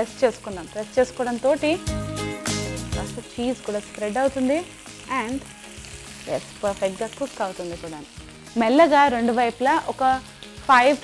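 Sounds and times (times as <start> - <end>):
woman speaking: 0.0 - 1.8, 3.0 - 5.4, 6.3 - 11.0
chicken sizzling in a grill pan: 0.0 - 11.0.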